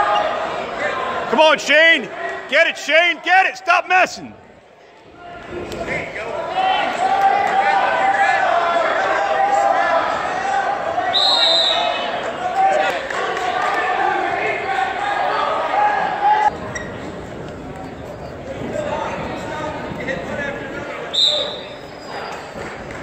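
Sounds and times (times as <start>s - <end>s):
spectators shouting: 0.0s - 4.4s, 5.2s - 16.5s
shrill referee's whistle blast: 11.1s - 12.0s, 21.2s - 22.2s.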